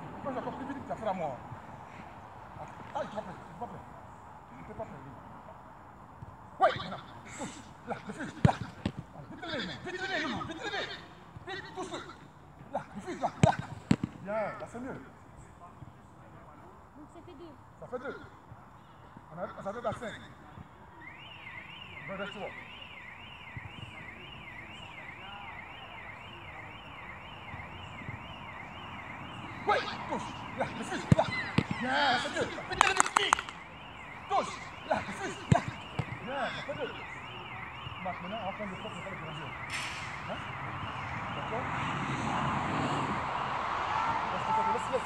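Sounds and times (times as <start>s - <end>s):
football kick thud: 13.4s - 14.2s, 31.0s - 32.0s, 35.5s - 36.3s
electronic siren wailing: 21.0s - 45.0s.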